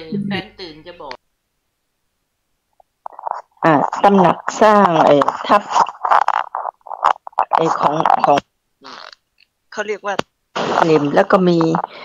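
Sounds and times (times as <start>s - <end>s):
woman speaking: 0.0s - 0.6s, 3.2s - 6.0s, 7.4s - 8.4s, 10.8s - 12.0s.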